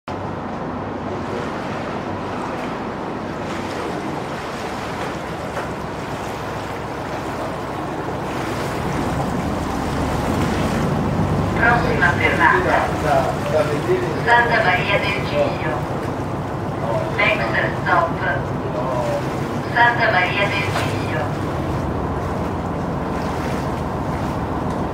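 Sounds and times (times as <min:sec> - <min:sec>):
boat engine hum: 0:00.0 - 0:24.9
water rushing against hull: 0:00.1 - 0:24.9.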